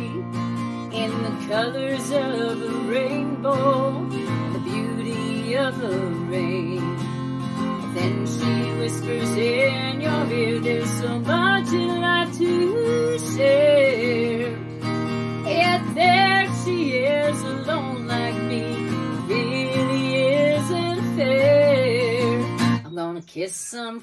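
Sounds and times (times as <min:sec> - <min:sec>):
strummed acoustic guitar: 0:00.0 - 0:23.1
woman singing: 0:00.0 - 0:24.0.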